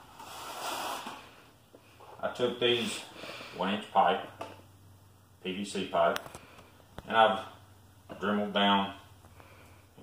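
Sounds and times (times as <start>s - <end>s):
man breathing through the nose: 2.9s - 3.6s, 9.3s - 10.0s.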